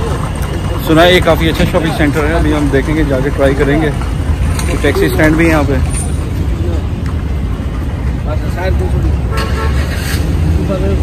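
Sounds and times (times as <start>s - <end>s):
traffic rumble: 0.0s - 11.0s
car horn: 9.2s - 10.3s.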